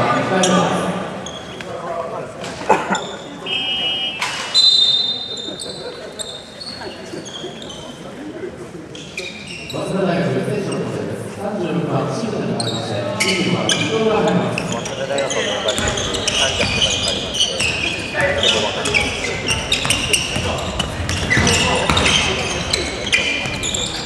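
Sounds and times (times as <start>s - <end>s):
sneaker squeaks: 0.4s - 8.3s, 8.9s - 9.9s, 12.6s - 24.0s
players calling out: 2.4s - 8.0s, 12.6s - 24.0s
basketball bouncing on hardwood floor: 19.7s - 22.2s.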